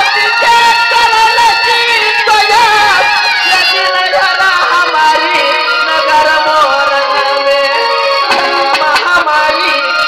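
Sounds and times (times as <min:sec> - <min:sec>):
live folk band music: 0:00.0 - 0:10.0
reedy melody instrument: 0:02.0 - 0:10.0.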